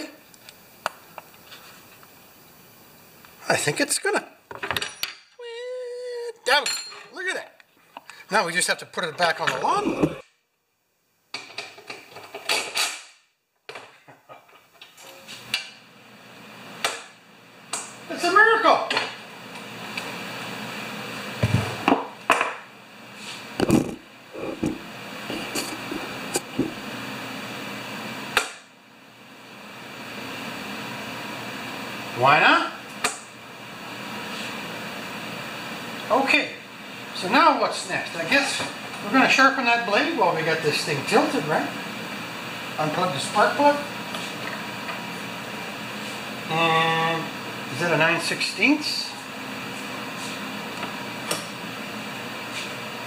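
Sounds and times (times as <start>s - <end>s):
steady background hum: 0.0s - 13.0s, 13.8s - 53.0s.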